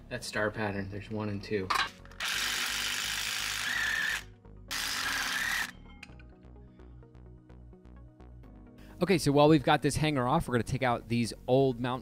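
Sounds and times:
power tool unscrewing bolts: 1.7 - 2.8.

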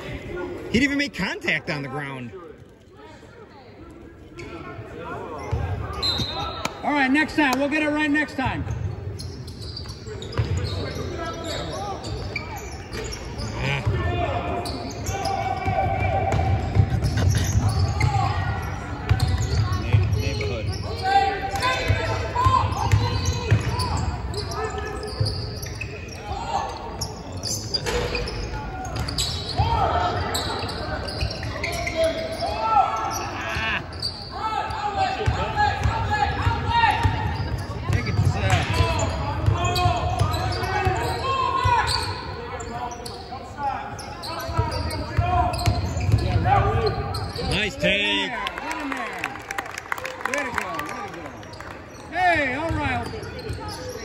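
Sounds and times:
sneakers squeaking: 3.2 - 48.3, 51.0 - 54.0
basketball bouncing on court: 9.8 - 10.7, 21.8 - 24.0, 35.2 - 41.8, 44.4 - 46.5.

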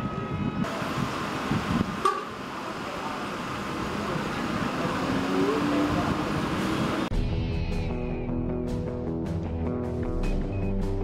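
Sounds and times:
road traffic: 0.0 - 7.1
voices: 2.0 - 7.1.

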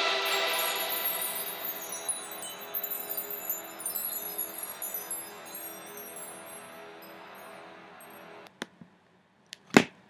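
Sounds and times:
music with held notes: 0.0 - 8.5
tinkling high chimes: 0.0 - 8.5.

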